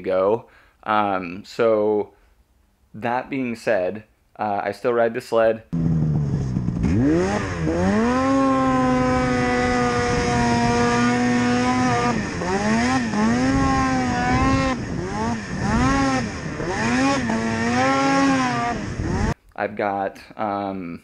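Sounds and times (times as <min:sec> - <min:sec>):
snowmobile engine revving: 0:05.8 - 0:19.4.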